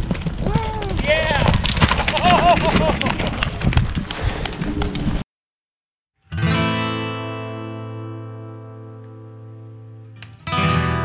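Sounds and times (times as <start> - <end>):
horse hoofbeats on dirt: 0.0 - 5.2.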